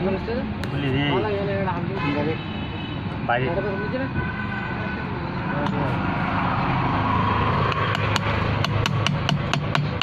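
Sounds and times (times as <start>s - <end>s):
steady background noise: 0.0s - 10.0s
hammer tapping on metal: 7.7s - 10.0s.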